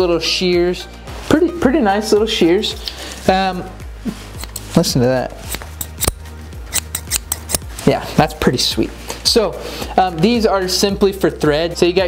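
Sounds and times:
metal shears snipping: 4.4s - 4.8s, 5.4s - 7.8s.

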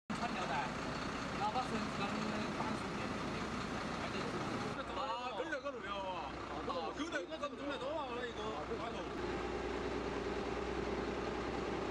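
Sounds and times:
people talking outdoors: 0.1s - 9.2s
vehicle engine hum: 0.1s - 11.9s.

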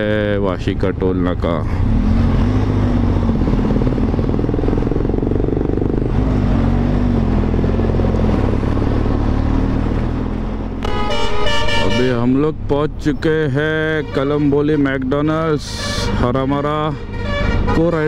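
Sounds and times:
wind and road noise: 0.0s - 18.0s
motorcycle engine running: 3.6s - 6.3s
vehicle horn: 10.8s - 12.4s, 13.8s - 14.7s, 15.7s - 18.0s.

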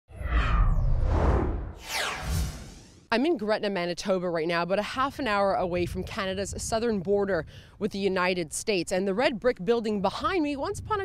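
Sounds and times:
deep rumble: 0.1s - 3.0s
downward-sweeping swish: 0.1s - 3.1s
loud whoosh: 0.1s - 3.1s.

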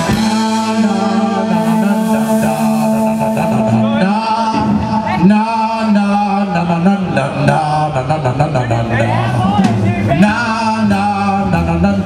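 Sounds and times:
hard rock band playing: 0.0s - 7.8s, 8.7s - 12.0s
person singing long held notes: 0.0s - 8.4s.

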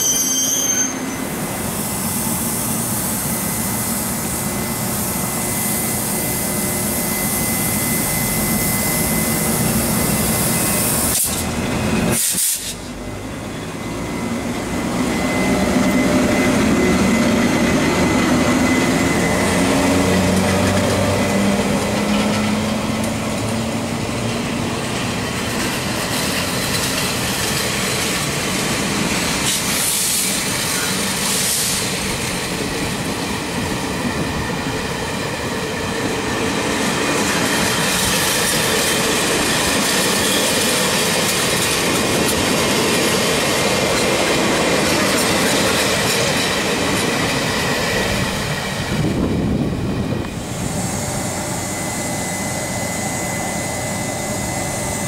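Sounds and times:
electric locomotive whine: 0.0s - 55.0s
train wheels clattering on rails: 7.1s - 51.7s.

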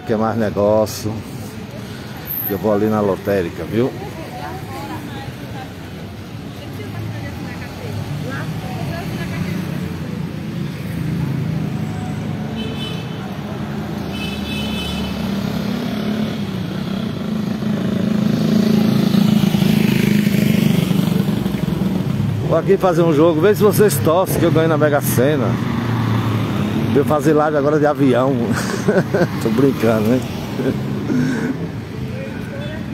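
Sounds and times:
vehicle engine approaching: 15.2s - 32.1s.

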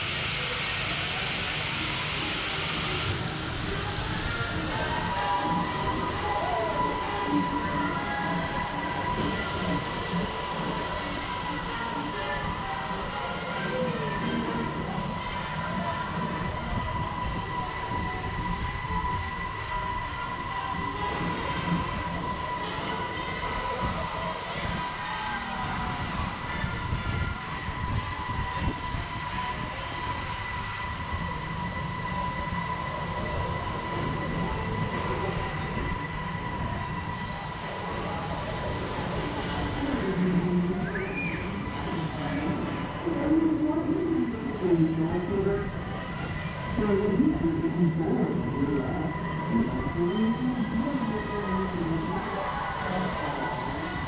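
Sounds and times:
constant high whine: 0.0s - 54.0s
ride mechanical rumble: 0.0s - 54.0s.

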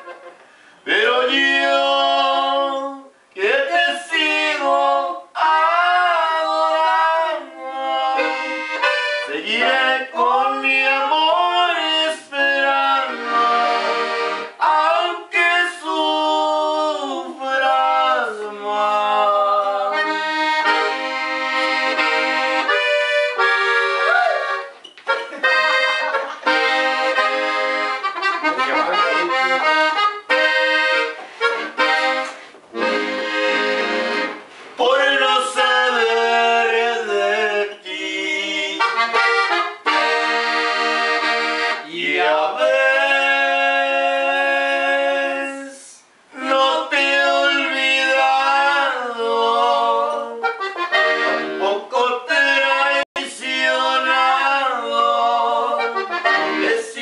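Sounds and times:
button accordion playing: 7.8s - 10.7s, 12.6s - 14.8s, 19.8s - 34.5s, 35.4s - 43.5s, 49.8s - 51.8s, 53.6s - 57.0s.

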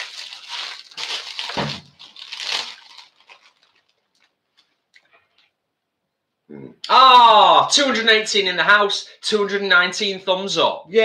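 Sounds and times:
plastic bag crinkling: 0.0s - 5.4s.

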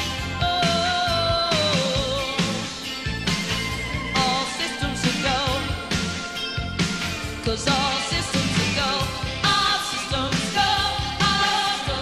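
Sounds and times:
live pop band music: 0.0s - 12.0s.

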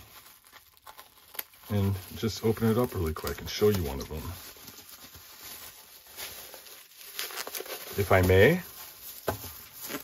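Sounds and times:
plastic crinkling: 0.0s - 10.0s
scissors cutting bubble wrap: 0.0s - 10.0s
sharp plastic crackles: 0.0s - 10.0s.

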